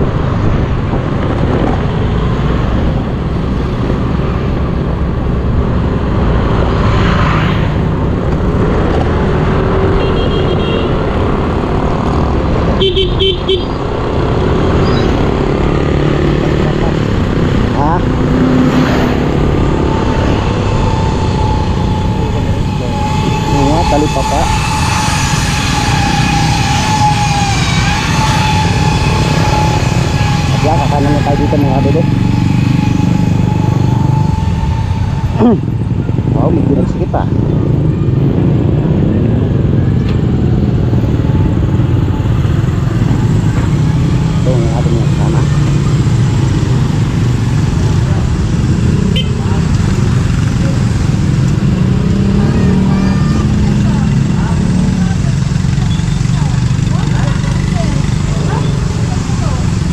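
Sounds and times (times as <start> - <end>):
motorcycle engine: 0.0 - 59.9
steady high tone: 17.8 - 45.9.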